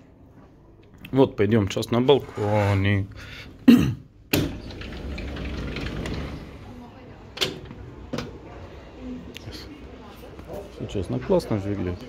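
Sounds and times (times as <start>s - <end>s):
sliding door clacking open: 4.3s - 8.4s.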